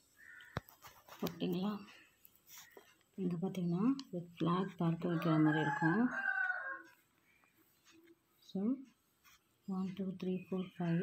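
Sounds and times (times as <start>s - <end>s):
rooster crowing: 5.2s - 6.9s.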